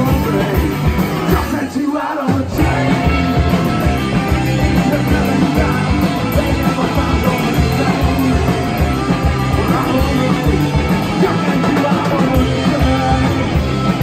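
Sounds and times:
punk rock band playing: 0.0s - 14.0s.

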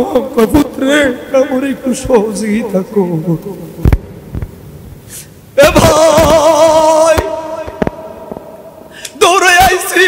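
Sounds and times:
man chanting over microphone: 0.0s - 3.9s, 5.6s - 10.0s.

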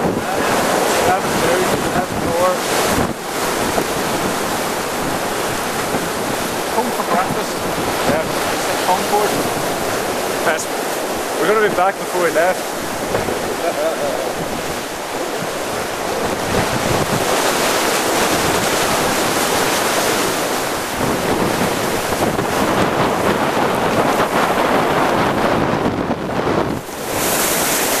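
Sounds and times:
breaking waves: 0.0s - 28.0s
water rushing along hull: 0.0s - 28.0s
wind buffeting microphone: 0.0s - 28.0s.

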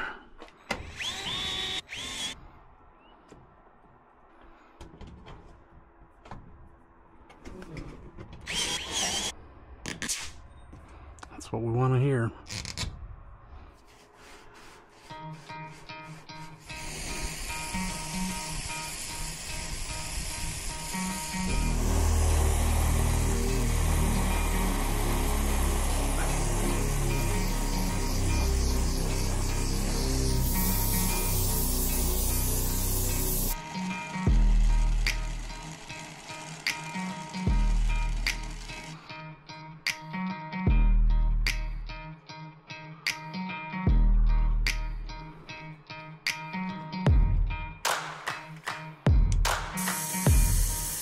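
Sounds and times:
background music: 15.1s - 51.0s
brazing torch hissing: 16.5s - 39.0s, 49.8s - 51.0s.

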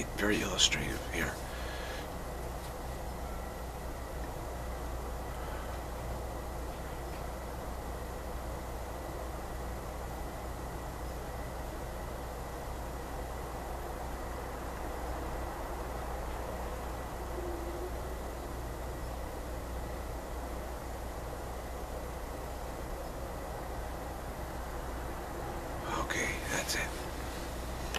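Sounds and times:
low hum: 0.0s - 27.9s
thin steady high tone: 8.8s - 27.0s.

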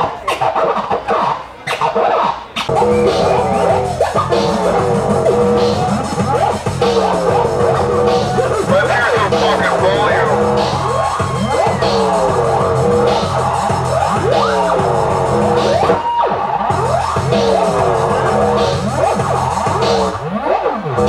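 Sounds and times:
turntable scratching: 0.0s - 21.0s
electronic dance music: 2.6s - 21.0s.

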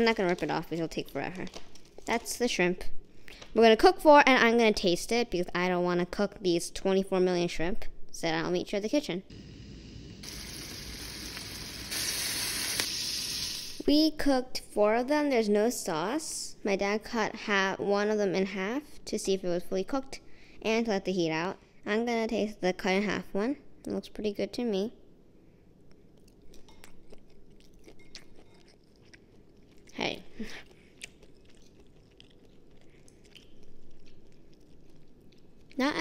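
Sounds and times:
shrimp sizzling in oil: 9.4s - 13.8s
chewing mouth clicks: 26.2s - 35.8s.

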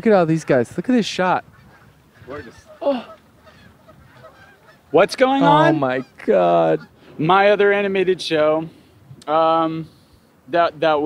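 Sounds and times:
faint calls: 0.0s - 9.0s
water-side background sound: 0.0s - 11.0s
goose honking: 1.4s - 7.1s
man's voice: 5.1s - 8.4s.

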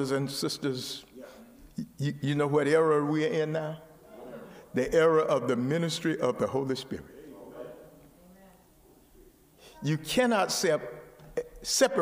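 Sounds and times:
faint voices in large room: 0.0s - 12.0s.

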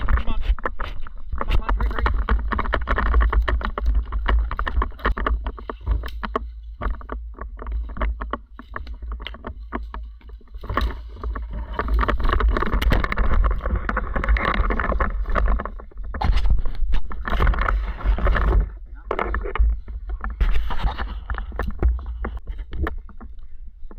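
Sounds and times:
rustling through undergrowth: 0.0s - 23.9s.

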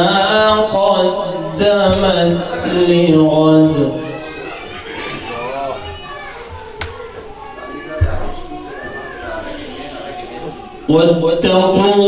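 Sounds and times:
man reciting over a microphone: 0.0s - 4.2s, 7.8s - 12.0s
children chattering: 0.0s - 12.0s.

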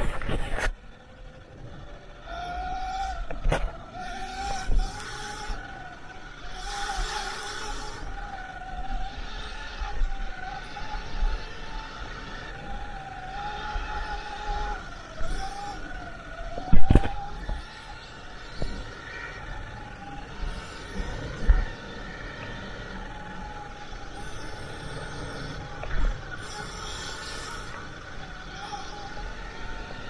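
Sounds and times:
electric dirt bike motor whining: 0.0s - 30.0s.

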